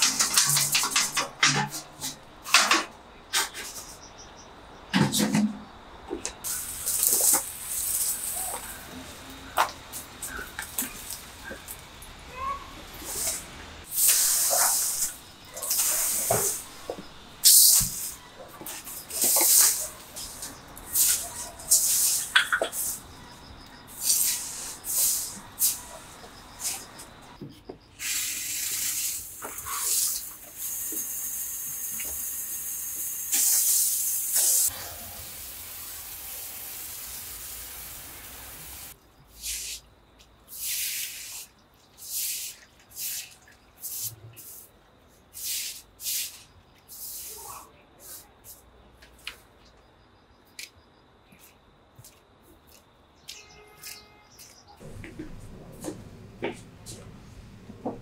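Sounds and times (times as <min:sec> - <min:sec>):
water spraying from hose: 0:00.0 - 0:03.9, 0:06.4 - 0:23.1, 0:23.9 - 0:27.0, 0:28.0 - 0:39.8, 0:40.5 - 0:44.6, 0:45.4 - 0:48.2
broom sweeping concrete: 0:06.4 - 0:09.0, 0:13.0 - 0:23.1, 0:23.9 - 0:27.0, 0:38.7 - 0:39.9, 0:40.5 - 0:44.7, 0:45.3 - 0:48.6.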